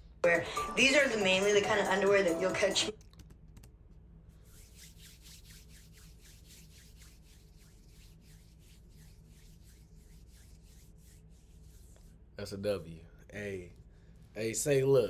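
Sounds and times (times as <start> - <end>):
low steady hum: 2.9 - 15.0
hands rubbing together: 4.4 - 12.2.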